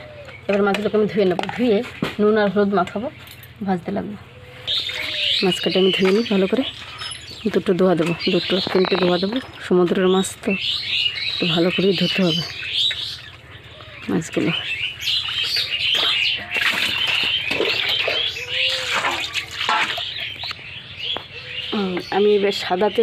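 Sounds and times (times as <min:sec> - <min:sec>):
small birds chirping: 0:00.0 - 0:23.0.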